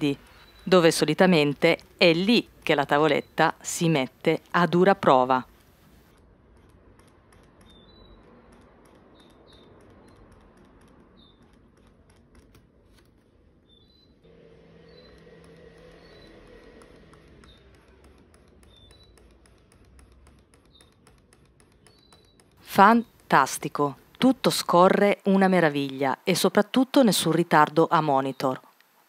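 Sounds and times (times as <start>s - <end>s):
stylus scratching on graphics tablet: 0.3s - 24.5s.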